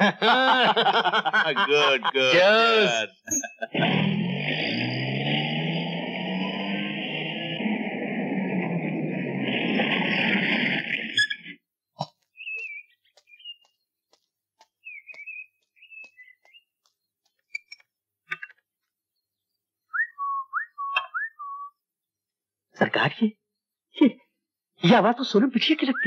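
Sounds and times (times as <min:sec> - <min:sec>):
high chirping whistles: 0:19.9 - 0:21.8.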